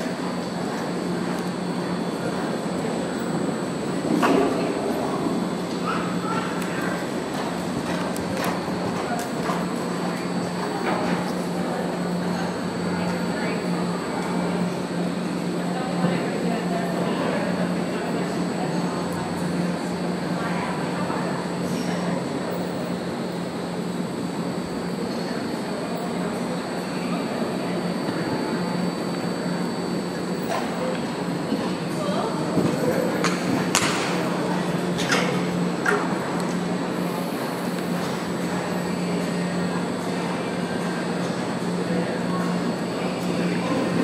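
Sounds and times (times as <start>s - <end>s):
indoor arena ambient din: 0.0s - 44.0s.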